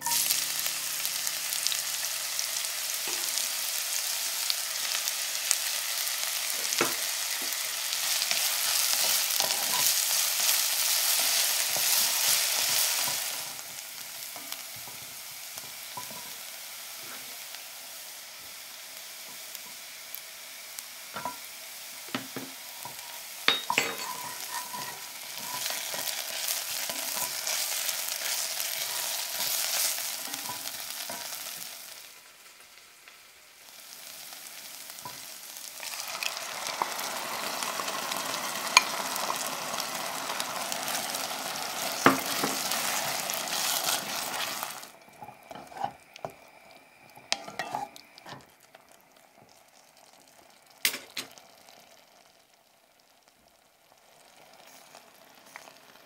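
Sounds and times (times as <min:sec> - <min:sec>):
onion sizzling in hot oil: 0:00.0 - 0:56.0.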